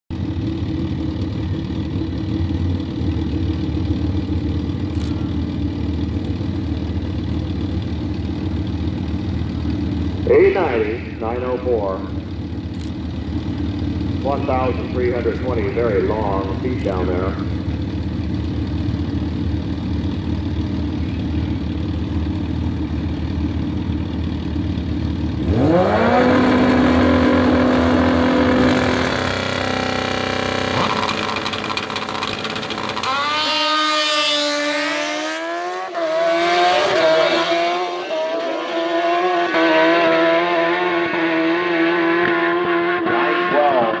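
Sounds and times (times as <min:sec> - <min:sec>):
motorcycles idling: 0:00.1 - 0:37.8
motorcycles accelerating through upshifts: 0:00.1 - 0:44.0
motorcycles revving: 0:00.1 - 0:44.0.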